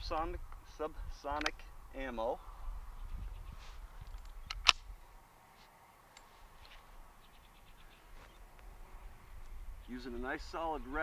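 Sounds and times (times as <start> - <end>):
light ticks of rifle handling: 1.3 - 1.6
rifle action clicking: 4.1 - 4.8.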